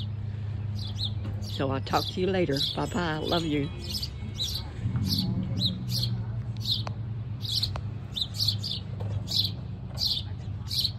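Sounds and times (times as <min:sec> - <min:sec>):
small bird chirping: 0:00.0 - 0:10.9.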